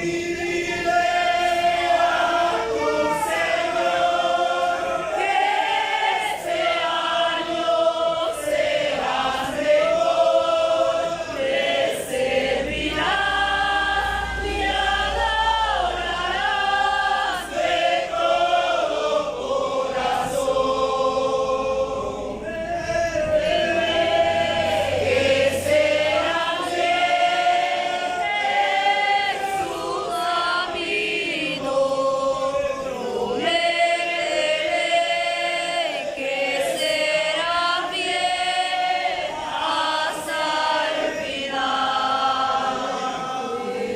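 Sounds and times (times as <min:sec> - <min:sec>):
congregation singing a hymn: 0:00.0 - 0:43.9.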